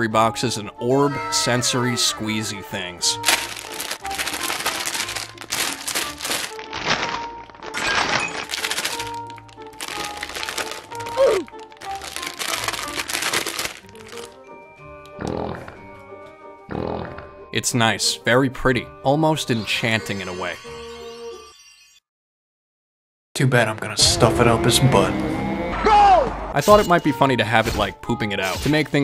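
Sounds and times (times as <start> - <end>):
background music: 0.0 - 21.5, 23.4 - 29.0
plastic wrapper crinkling and tearing: 3.1 - 14.4.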